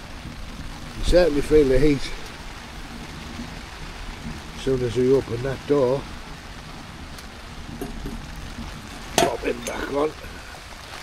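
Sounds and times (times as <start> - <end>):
rain on tent fabric: 0.0 - 11.0.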